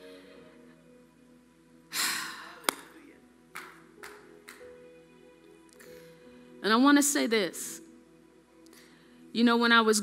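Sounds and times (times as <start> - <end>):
soft music of held chords: 0.0 - 10.0.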